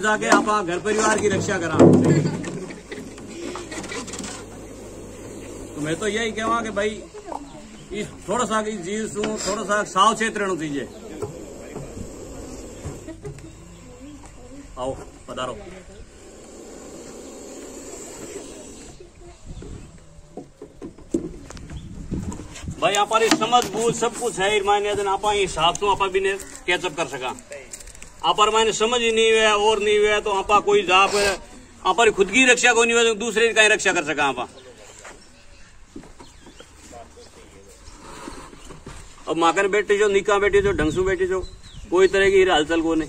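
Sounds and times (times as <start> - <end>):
faint voices: 0.0 - 22.1
snake hissing: 3.3 - 7.2, 9.3 - 14.0, 15.6 - 19.4.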